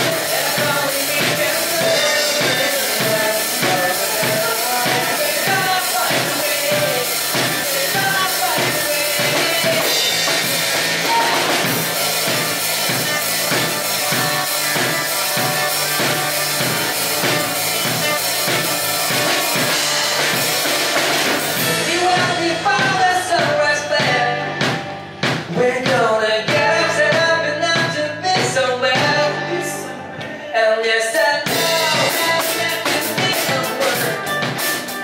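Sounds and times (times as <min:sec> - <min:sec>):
drum kit beat: 0:00.0 - 0:29.4, 0:31.4 - 0:35.0
bass guitar: 0:00.0 - 0:35.0
electric guitar: 0:00.0 - 0:35.0
lead vocal singing: 0:00.0 - 0:35.0.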